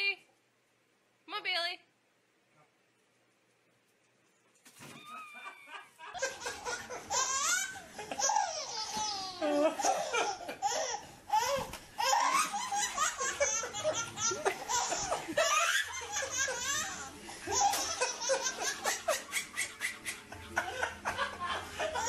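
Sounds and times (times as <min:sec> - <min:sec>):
adults laughing: 0:05.2 - 0:08.7, 0:12.5 - 0:22.0
baby laughing: 0:05.3 - 0:22.0.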